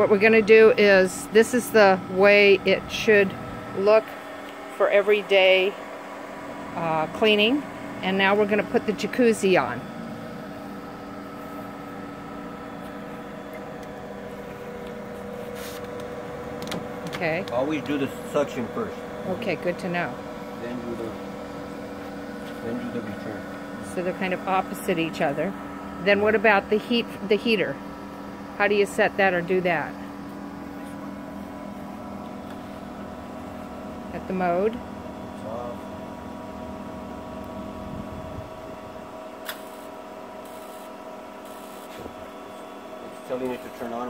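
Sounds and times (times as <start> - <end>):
pool pump motor humming: 0.0 - 44.0.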